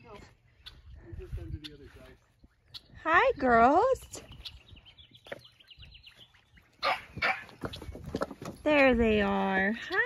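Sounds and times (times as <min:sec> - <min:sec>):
dog barking: 0:06.8 - 0:07.5.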